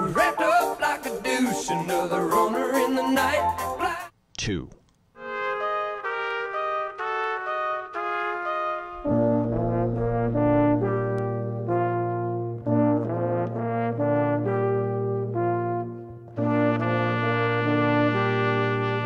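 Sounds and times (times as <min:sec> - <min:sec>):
brass quintet playing chords: 0:05.2 - 0:19.0.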